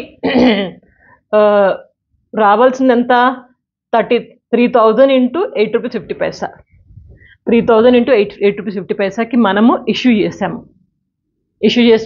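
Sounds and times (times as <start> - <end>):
woman clearing her throat: 0.1 - 0.8.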